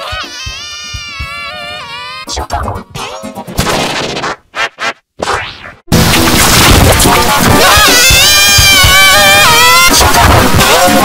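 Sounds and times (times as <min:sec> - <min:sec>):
distorted cartoon girl crying: 0:00.0 - 0:02.4, 0:07.7 - 0:10.0.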